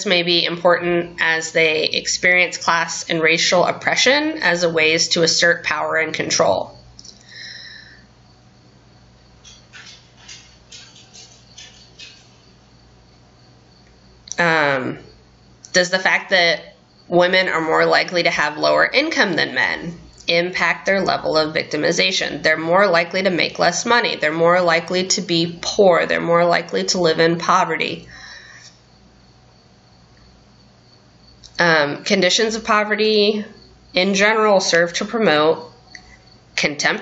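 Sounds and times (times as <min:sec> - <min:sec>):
low electrical hum: 0:00.0 - 0:37.0.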